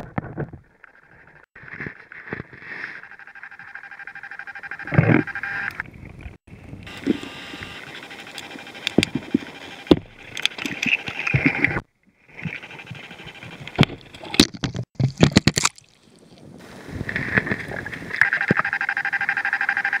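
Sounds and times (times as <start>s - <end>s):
steady underwater whine: 2.8s - 14.4s, 16.6s - 20.0s.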